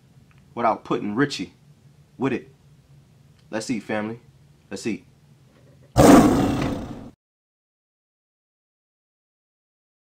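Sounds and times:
lion roar: 6.0s - 7.2s.

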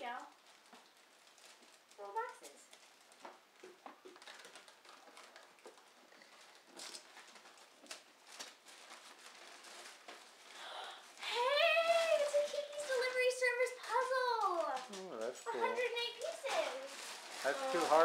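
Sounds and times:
wrapping paper rustling and tearing: 0.0s - 18.0s.

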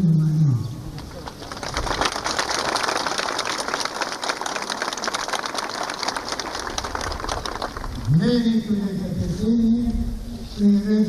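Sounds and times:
crowd applauding: 1.0s - 8.2s.

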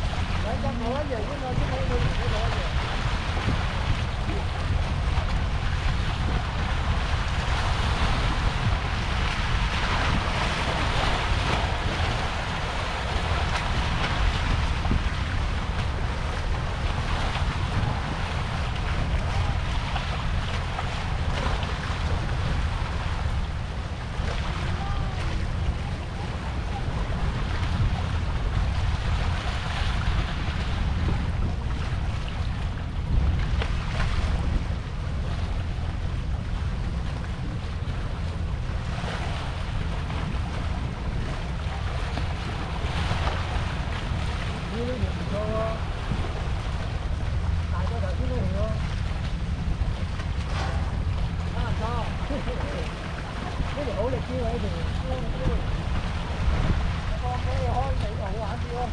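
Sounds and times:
seawater washing against rocks: 0.0s - 58.9s
wind buffeting microphone: 0.0s - 58.9s.

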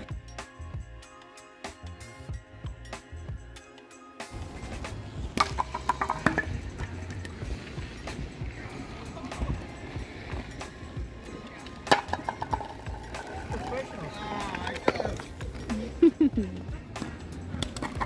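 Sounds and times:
stones clacking: 5.4s - 6.6s.

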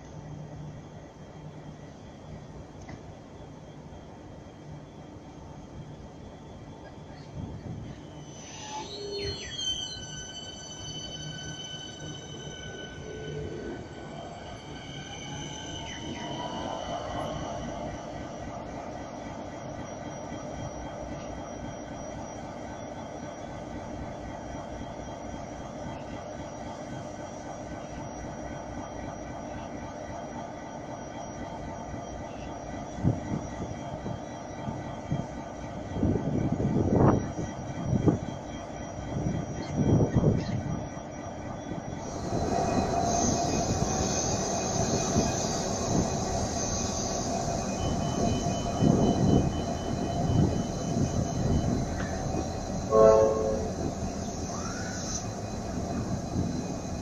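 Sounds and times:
diesel locomotives droning: 0.0s - 57.0s
train horn note: 52.8s - 54.0s.

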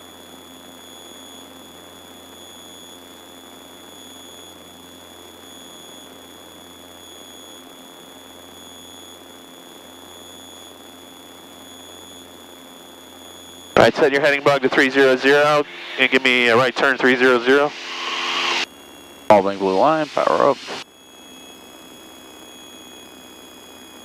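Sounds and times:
high-pitched whine: 0.8s - 24.0s
aircraft engines droning: 13.8s - 20.8s.

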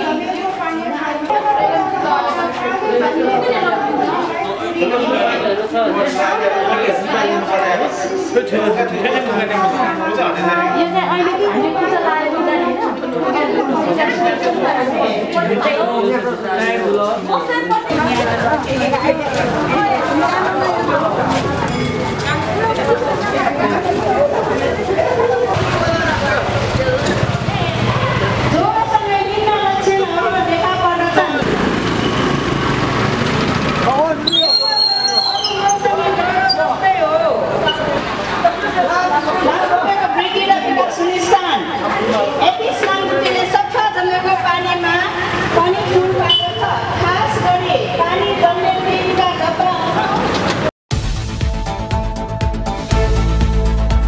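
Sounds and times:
people talking at once: 0.0s - 31.5s, 33.7s - 50.6s
group overlapping chatter: 0.0s - 50.7s.

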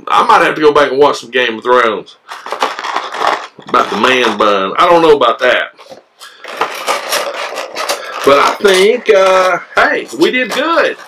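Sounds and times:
plastic bag crinkling: 2.3s - 4.5s, 6.3s - 11.0s.

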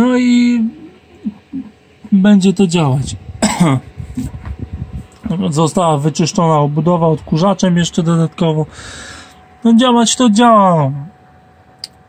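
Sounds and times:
low uneven rumble: 0.0s - 11.8s
man clearing his throat: 3.3s - 3.9s.

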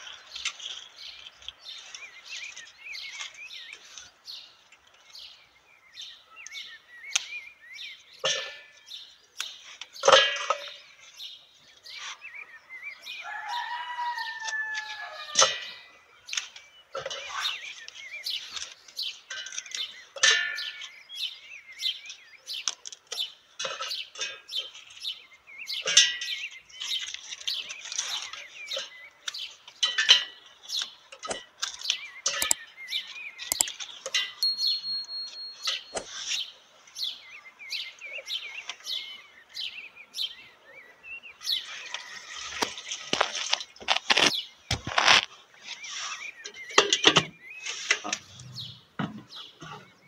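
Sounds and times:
birds chirping: 0.0s - 50.0s
dried peels crackling and rustling: 26.5s - 32.0s, 41.6s - 46.3s.

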